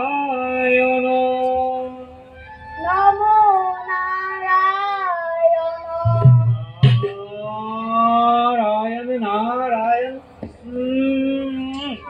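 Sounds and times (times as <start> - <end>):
high voice singing: 2.8 - 8.4
sharp knock: 6.1 - 7.2.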